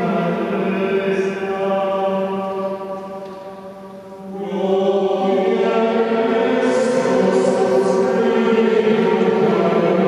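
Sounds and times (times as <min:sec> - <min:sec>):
choir singing chant: 0:00.0 - 0:10.0.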